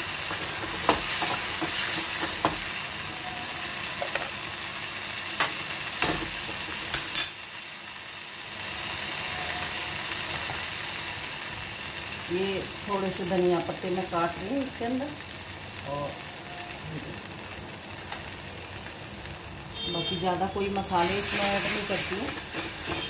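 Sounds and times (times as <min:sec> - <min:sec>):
food sizzling in hot oil: 0:00.0 - 0:23.0
metal spoon scraping a pan: 0:06.9 - 0:07.4.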